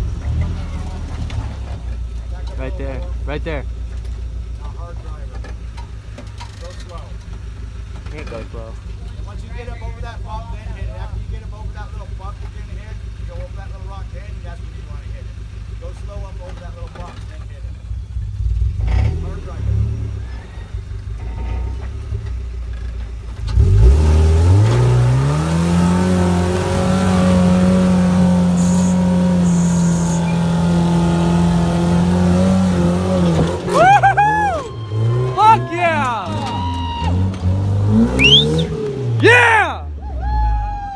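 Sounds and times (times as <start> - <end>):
truck engine revving: 18.2 - 40.1
tires spinning on rock: 20.2 - 40.9
people shouting and whooping: 33.6 - 38.6, 39.2 - 40.9.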